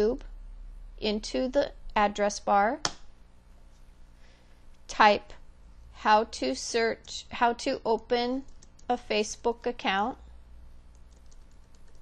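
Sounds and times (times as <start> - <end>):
keyboard typing: 8.4 - 9.0, 10.9 - 12.0.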